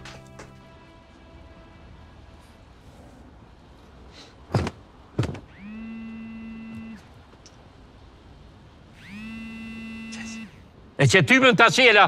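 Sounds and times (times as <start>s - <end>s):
mobile phone buzzing: 5.6s - 7.0s, 9.0s - 10.6s.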